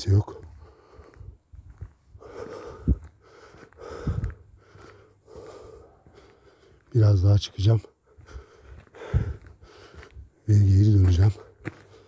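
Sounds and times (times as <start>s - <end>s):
man breathing close to microphone: 0.4s - 6.9s, 7.9s - 10.4s, 11.4s - 12.0s.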